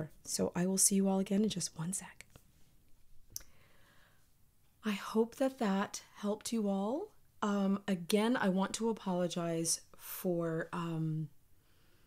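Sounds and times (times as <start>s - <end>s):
woman speaking: 0.0s - 2.2s, 4.8s - 11.3s.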